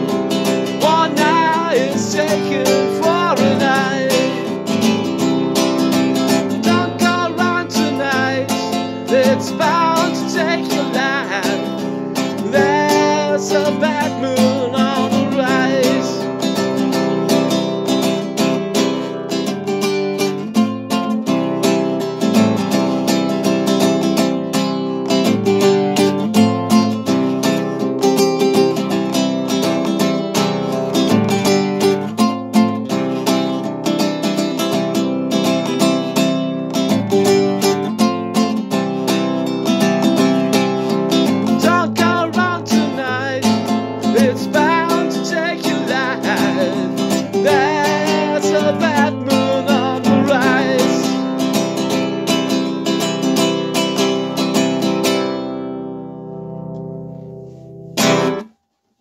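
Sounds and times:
man singing: 0.0s - 17.8s, 40.2s - 52.7s
classical guitar strumming: 0.0s - 59.0s.

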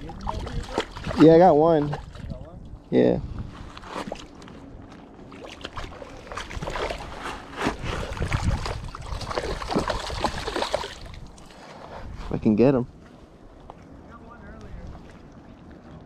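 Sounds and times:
fish splashing in water: 0.0s - 2.2s, 5.3s - 11.4s
wind rumble on microphone: 0.0s - 5.0s, 5.7s - 16.0s.

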